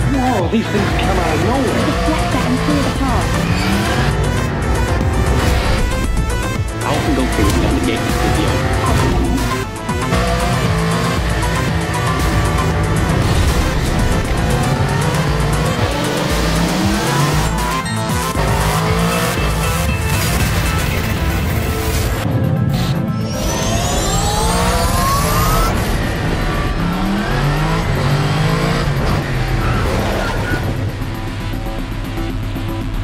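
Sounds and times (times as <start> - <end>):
motorcycle engines revving: 0.0 - 33.0
music soundtrack: 0.0 - 33.0.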